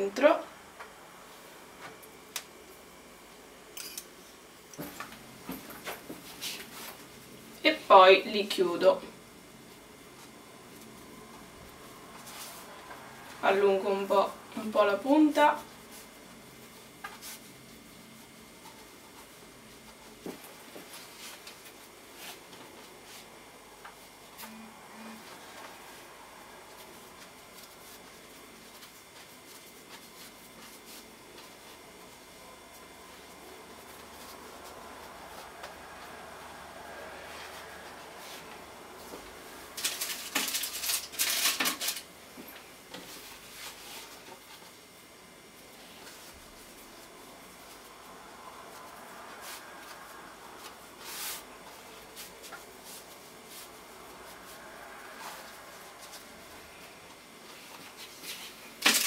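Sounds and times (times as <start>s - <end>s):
hands rubbing and rolling dough: 9.7s - 24.2s, 25.3s - 41.0s, 43.0s - 58.8s.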